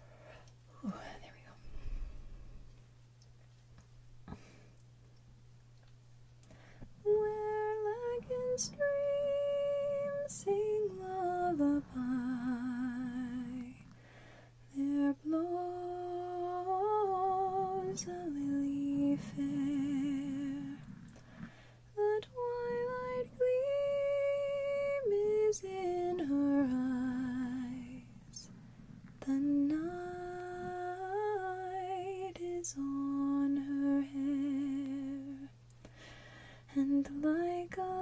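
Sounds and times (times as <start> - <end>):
woman humming: 0.7 - 2.5, 14.7 - 28.5.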